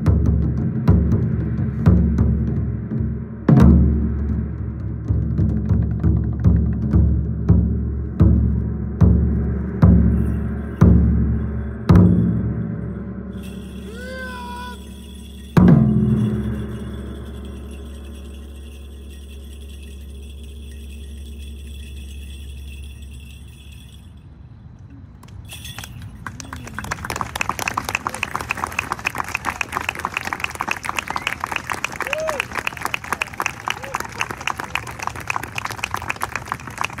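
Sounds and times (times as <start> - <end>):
ringing of large drum: 0.0 - 23.9
bell staff jingling: 10.0 - 37.0
steady low hum: 14.8 - 25.0
audience clapping: 26.2 - 37.0.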